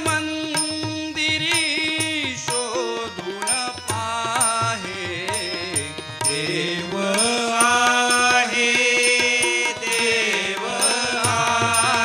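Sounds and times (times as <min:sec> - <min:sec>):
harmonium: 0:00.0 - 0:12.0
tabla: 0:00.0 - 0:12.0
voices singing devotional song: 0:00.0 - 0:12.0.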